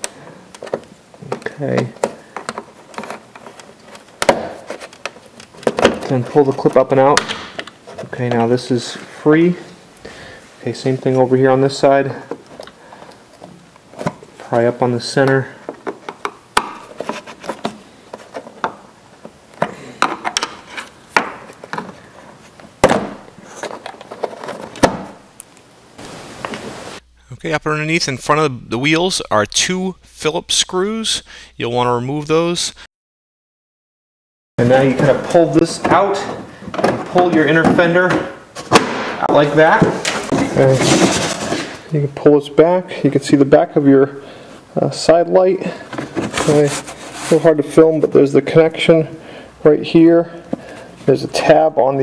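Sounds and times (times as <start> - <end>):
steady hiss: 25.4 - 31.6.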